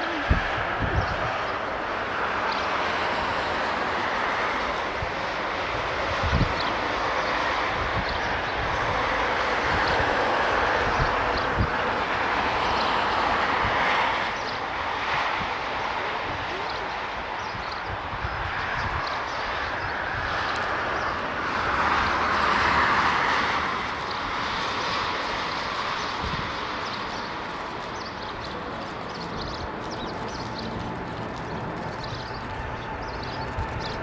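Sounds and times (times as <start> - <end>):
jet engines roaring: 0.0 - 34.0.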